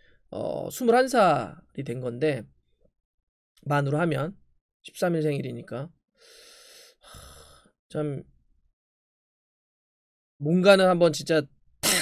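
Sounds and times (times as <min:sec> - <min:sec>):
man breathing close to microphone: 0:06.2 - 0:07.8.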